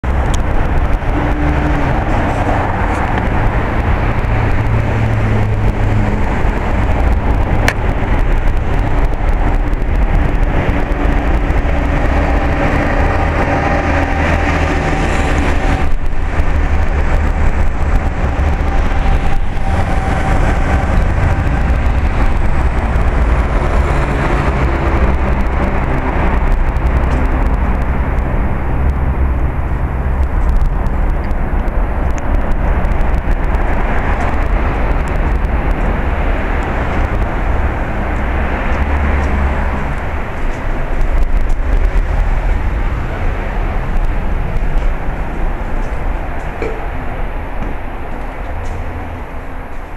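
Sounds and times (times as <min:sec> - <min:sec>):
rumble of passing vehicles: 0:00.0 - 0:49.9.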